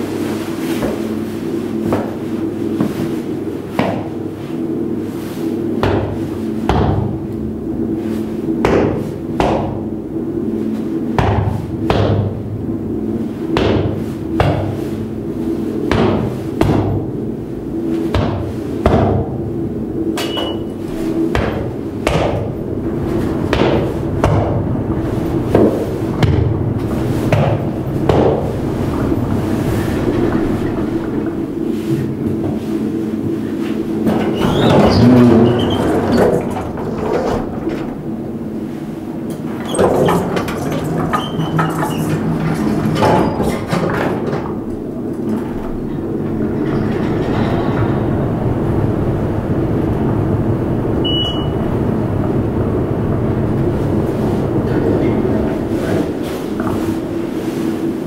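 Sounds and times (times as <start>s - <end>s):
lift machinery hum: 0.0s - 58.0s
sharp knocks: 13.6s - 14.9s, 15.9s - 17.1s, 21.3s - 24.7s, 25.4s - 28.7s.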